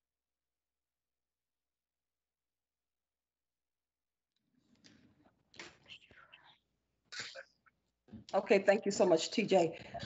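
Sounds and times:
quiet whispered voice: 5.6 - 7.4.

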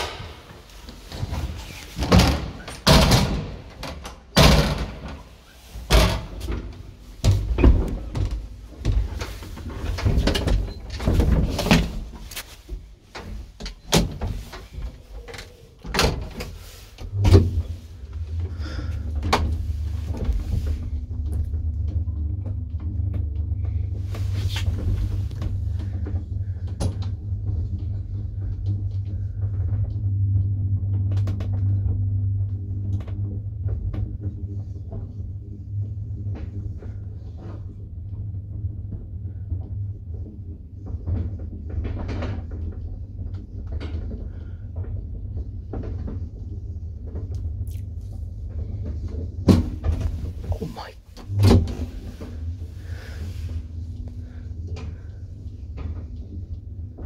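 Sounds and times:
elevator humming: 48.2 - 57.0.

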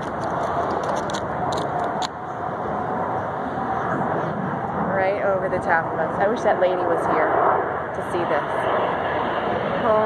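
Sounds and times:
faint whine: 0.0 - 10.0
jet engines roaring: 0.0 - 10.0.

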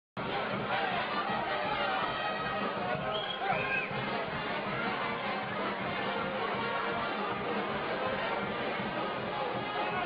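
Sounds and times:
overlapping voices: 0.2 - 10.0.

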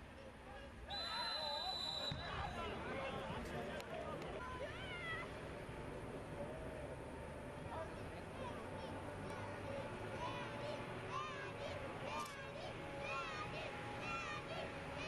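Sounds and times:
referee's whistle blast: 0.9 - 2.4
people shouting: 9.4 - 15.0.

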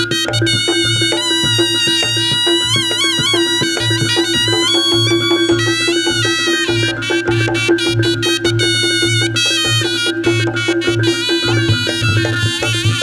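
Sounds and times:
drum and gong beat: 0.0 - 13.0
shawm playing bending melody: 0.0 - 13.0
steady held tone: 0.8 - 13.0.

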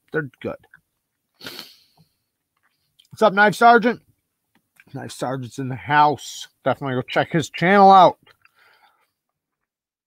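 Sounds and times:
man breathing close to microphone: 1.4 - 2.2, 8.4 - 9.2.

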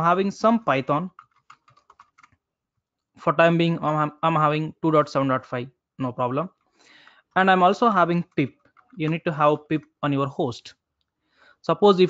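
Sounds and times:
computer keyboard typing: 1.0 - 2.4.

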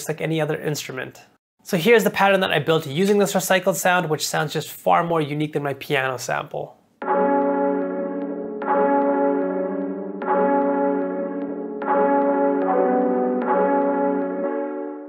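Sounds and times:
piano sample melodic pattern: 7.0 - 15.0.

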